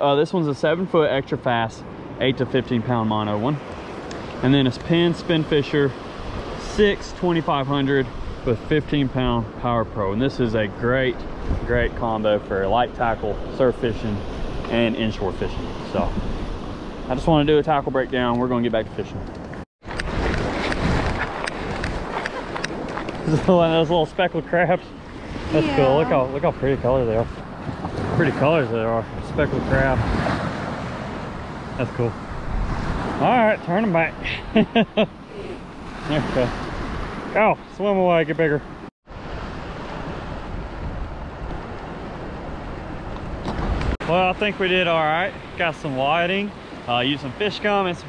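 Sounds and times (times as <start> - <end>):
wind on microphone: 8.0 - 17.5, 19.1 - 24.2, 24.9 - 33.3, 39.1 - 44.0
surf washing on shore: 19.8 - 48.0
surf breaking on beach: 25.2 - 34.2.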